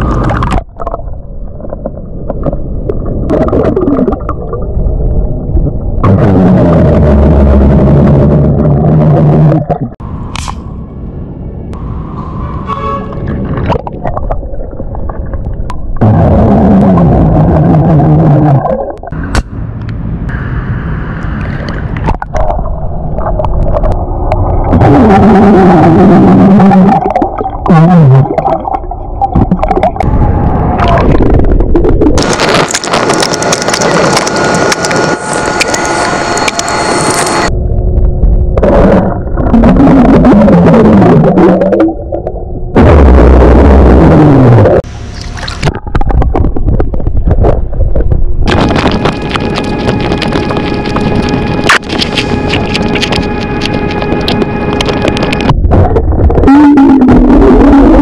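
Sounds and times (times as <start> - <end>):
underwater bubbles and burps: 0.0 - 10.0, 13.6 - 19.2, 22.2 - 30.1, 38.6 - 42.8
rushing water noise: 48.5 - 55.5.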